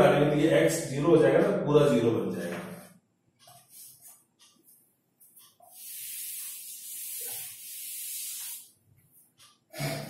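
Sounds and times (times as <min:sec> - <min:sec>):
duster wiping a chalkboard: 0:05.2 - 0:09.2.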